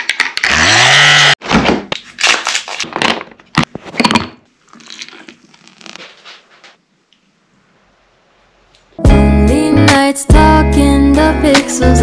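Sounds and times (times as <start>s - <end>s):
electric frother whirring: 0.4s - 1.4s.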